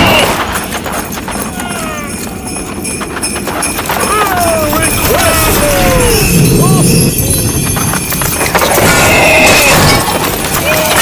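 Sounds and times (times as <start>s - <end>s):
hooves clip-clopping: 0.0s - 11.0s.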